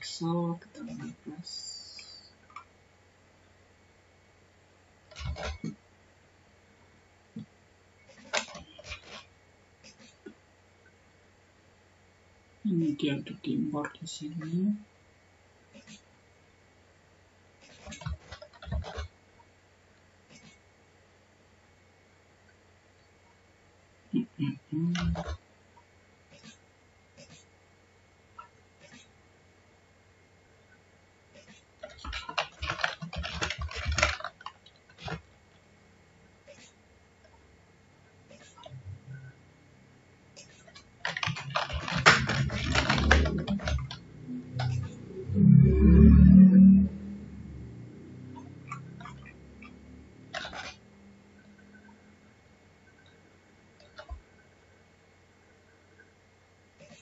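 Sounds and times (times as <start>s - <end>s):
mouse and keyboard clicks: 5.1s - 5.8s, 31.4s - 35.2s, 40.4s - 45.0s, 48.3s - 50.9s.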